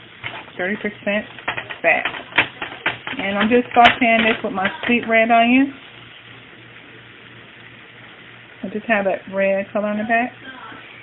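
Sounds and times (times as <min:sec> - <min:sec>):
meat and onion sizzling in a pan: 0:00.0 - 0:11.0.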